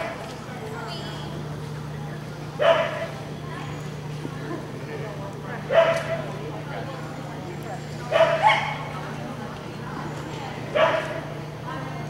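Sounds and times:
dog barking: 2.6s - 3.1s, 5.7s - 6.3s, 8.1s - 8.9s, 10.7s - 11.3s.

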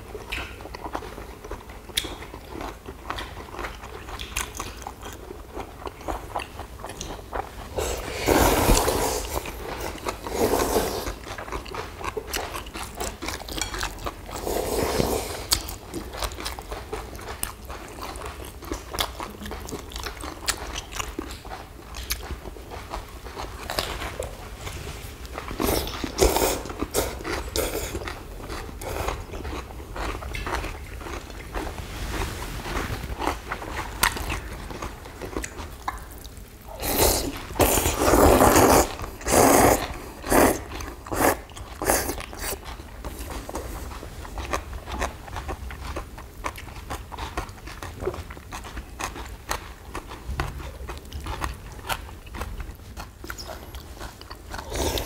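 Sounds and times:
chewing and crunching: 0.0s - 55.0s.

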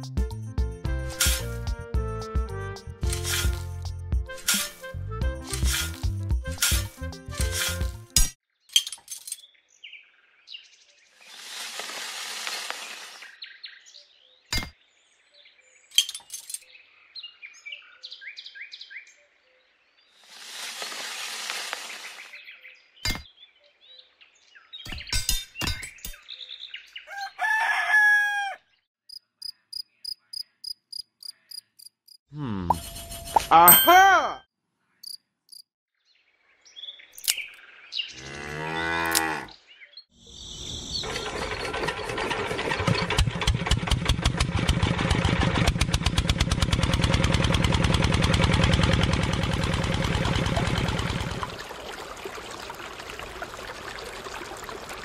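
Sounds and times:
sand poured into toy mixer: 3.1s - 3.7s, 5.5s - 8.0s, 11.2s - 13.2s, 20.2s - 22.3s
rooster crowing: 27.1s - 28.7s.

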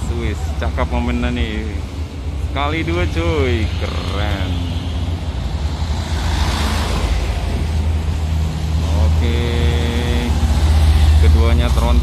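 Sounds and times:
diesel coach engine rumble: 0.0s - 12.0s.

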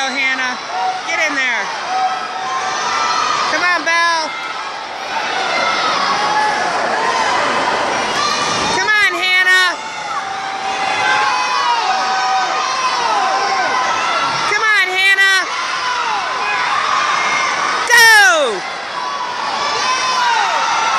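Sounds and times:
crowd cheering and shouting: 0.0s - 20.9s.

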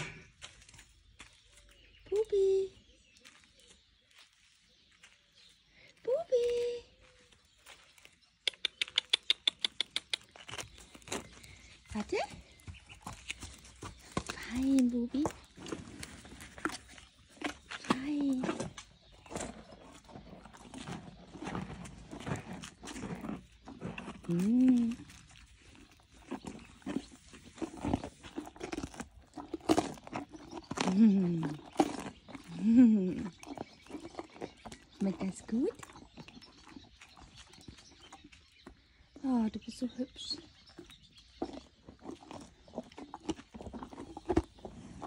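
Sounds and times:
horse breathing and snuffling: 8.7s - 45.0s.

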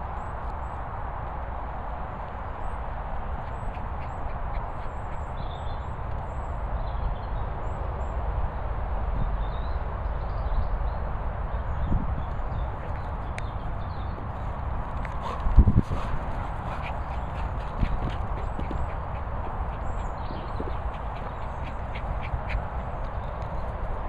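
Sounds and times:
wind rumble on microphone: 0.0s - 24.0s
paws thudding on grass: 3.2s - 5.8s, 12.8s - 24.0s.

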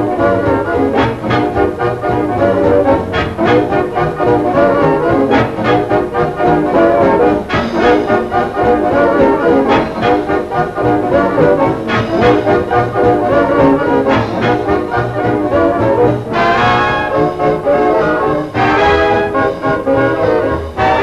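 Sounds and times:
swing big band playing: 0.0s - 21.0s.

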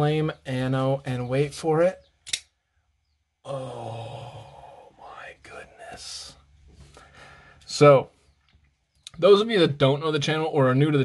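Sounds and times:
man whispering: 3.4s - 8.0s
hissing breath: 6.8s - 7.7s.

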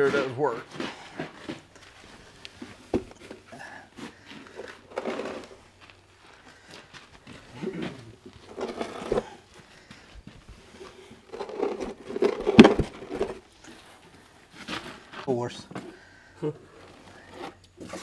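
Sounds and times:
shuffling: 0.0s - 18.0s.

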